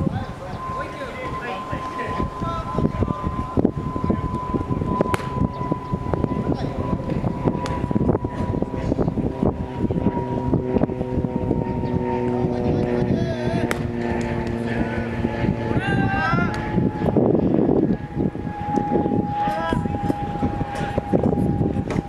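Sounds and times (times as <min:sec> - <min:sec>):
distant voices calling out: 0:00.0 - 0:07.5, 0:11.1 - 0:17.1, 0:18.0 - 0:22.0
wind buffeting microphone: 0:00.0 - 0:22.0.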